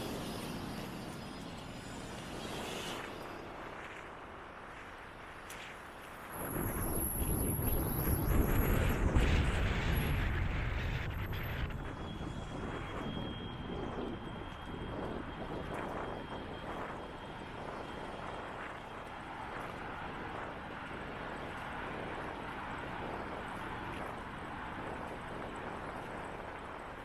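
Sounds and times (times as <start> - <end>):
high steady whine: 0.0 - 27.0
wind on microphone: 1.8 - 27.0.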